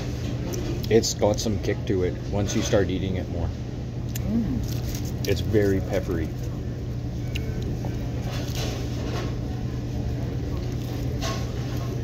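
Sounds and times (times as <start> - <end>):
dining room hum: 0.0 - 12.0.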